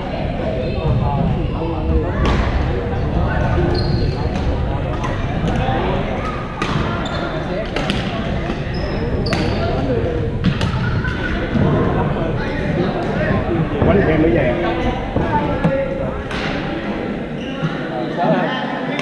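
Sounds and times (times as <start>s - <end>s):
players' voices: 0.0s - 19.0s
sneaker squeaks on court floor: 6.7s - 9.8s.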